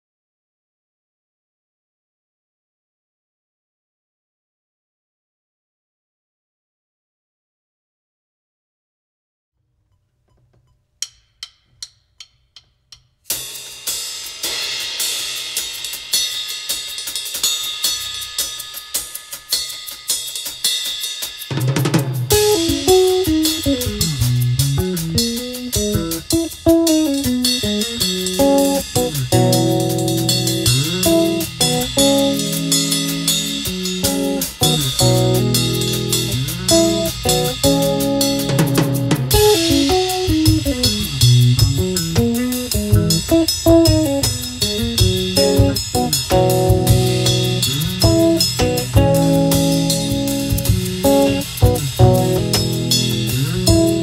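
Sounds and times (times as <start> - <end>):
drum kit groove: 11.0 - 54.0
electric bass melodic line: 22.3 - 54.0.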